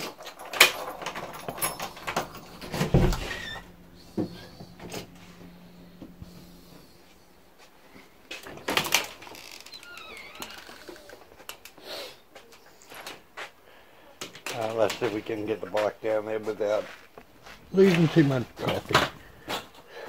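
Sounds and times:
door clattering: 0.0s - 5.2s.

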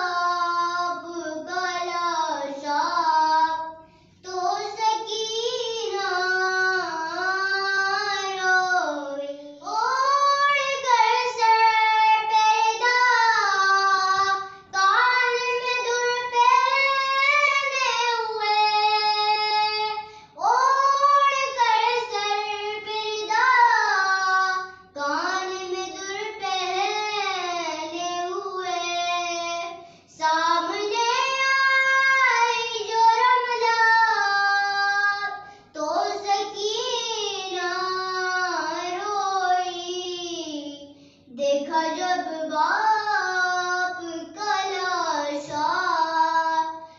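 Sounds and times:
girl chanting a lament: 0.0s - 46.9s.

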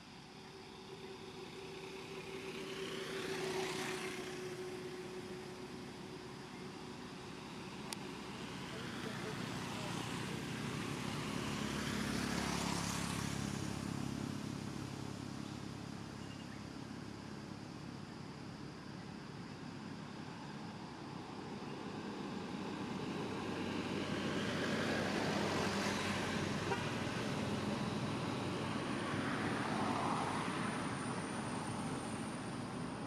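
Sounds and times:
road vehicles passing: 0.0s - 33.0s.

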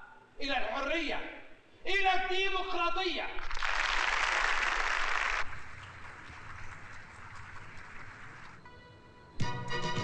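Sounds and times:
audience applauding on television: 3.4s - 8.6s.

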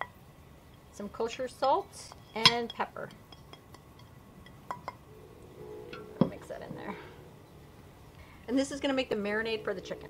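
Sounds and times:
soft background music: 5.1s - 10.0s.

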